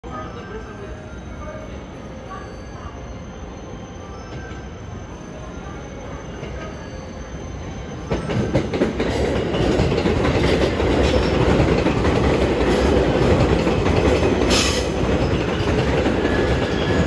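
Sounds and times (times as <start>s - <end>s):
train wheels rumbling on rail: 4.3s - 17.0s
high wheel squeals: 14.1s - 17.0s.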